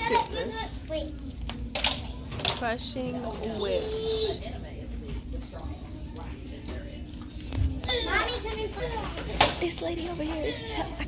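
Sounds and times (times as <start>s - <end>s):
store background hum: 0.0s - 11.0s
child speaking: 7.8s - 11.0s.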